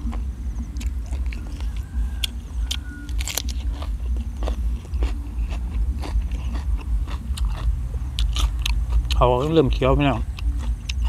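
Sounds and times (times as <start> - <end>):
crunchy chewing: 0.0 - 11.0.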